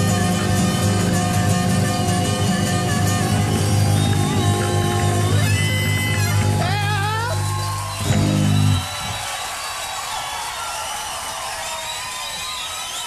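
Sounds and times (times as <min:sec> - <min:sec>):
live rock band final chord: 0:00.0 - 0:08.9
audience cheering and applauding: 0:01.5 - 0:13.0.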